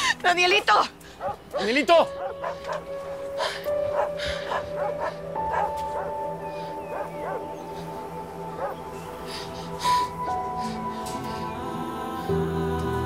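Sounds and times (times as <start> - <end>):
dramatic background music: 0.0 - 13.0.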